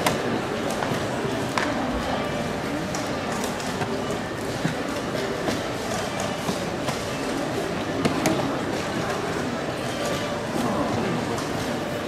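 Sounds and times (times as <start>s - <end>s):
hubbub of a hall: 0.0s - 12.0s.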